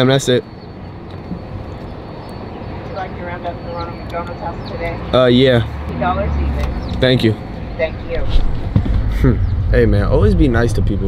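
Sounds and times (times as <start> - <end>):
traffic rumble and hiss: 0.0 - 11.0.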